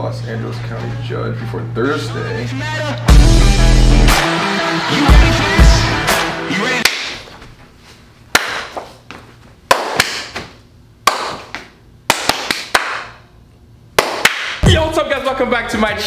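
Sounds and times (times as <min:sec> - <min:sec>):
hand claps and slaps: 0:06.8 - 0:07.4, 0:08.3 - 0:09.0, 0:09.7 - 0:13.2, 0:14.0 - 0:14.7.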